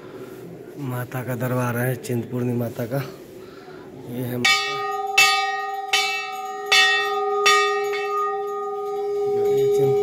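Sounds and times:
large brass bell ringing: 0:04.4 - 0:10.0.

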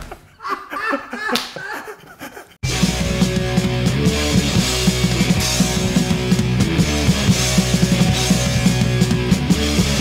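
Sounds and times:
man laughing heartily: 0:00.0 - 0:02.6
loud hardcore punk music: 0:02.6 - 0:10.0.

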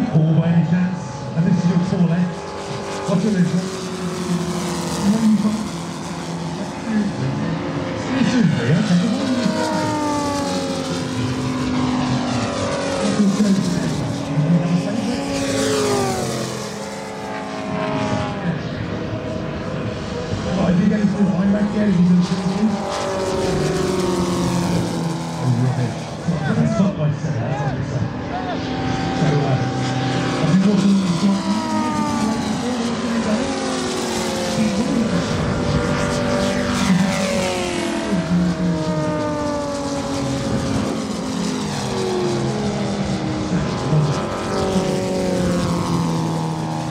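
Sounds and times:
model airplane engines passing: 0:00.0 - 0:46.9.

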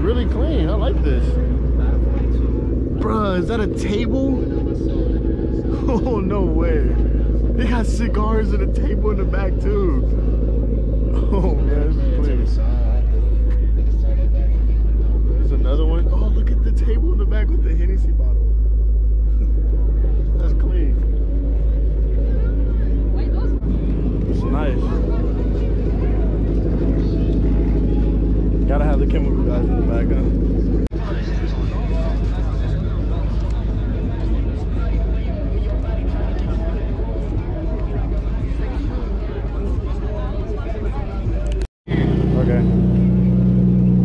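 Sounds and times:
car engines idling: 0:00.0 - 0:44.0
people chattering: 0:00.0 - 0:44.0.

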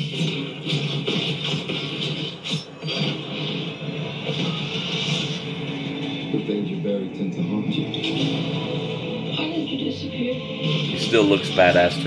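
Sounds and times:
film trailer music: 0:00.0 - 0:12.0.

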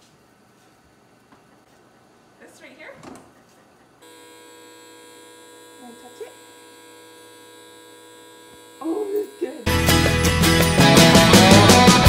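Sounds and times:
electric motor buzzing hum: 0:04.0 - 0:10.6.

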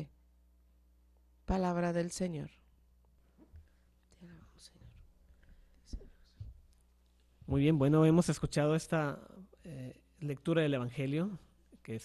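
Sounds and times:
person whispering: 0:04.1 - 0:05.0.

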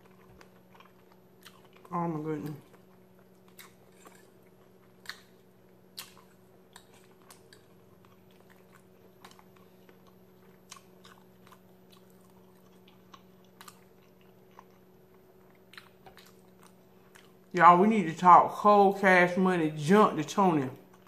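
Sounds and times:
faint low hum: 0:00.0 - 0:21.0
chewing mouth clicks: 0:02.7 - 0:05.4.

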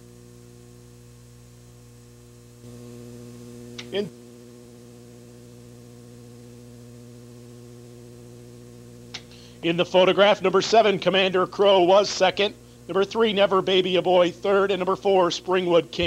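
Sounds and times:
electrical hum: 0:00.0 - 0:16.0.

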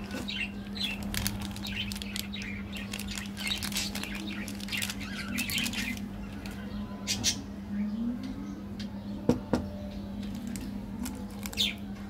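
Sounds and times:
birds chirping: 0:00.0 - 0:12.0
steady low hum: 0:00.0 - 0:12.0
plastic wrapper crackling and tearing: 0:00.1 - 0:06.6, 0:10.2 - 0:11.9.

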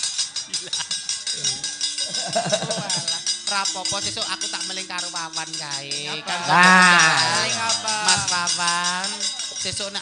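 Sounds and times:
gamelan metallic strikes: 0:00.0 - 0:10.0
women singing: 0:06.1 - 0:08.6.

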